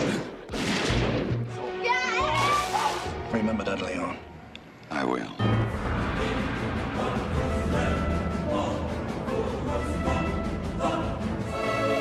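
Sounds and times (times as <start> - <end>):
film soundtrack music: 0.0 - 12.0.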